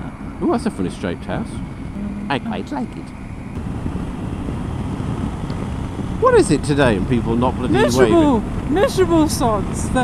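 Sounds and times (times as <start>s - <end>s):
motorcycle engine rumbling: 0.0s - 10.0s
wind noise on microphone: 3.4s - 10.0s.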